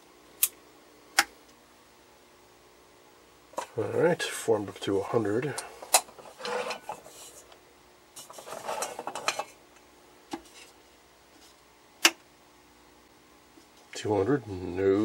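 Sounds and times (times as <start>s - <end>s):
faint steady hum: 0.0s - 15.0s
scratchy rustling: 6.2s - 7.5s.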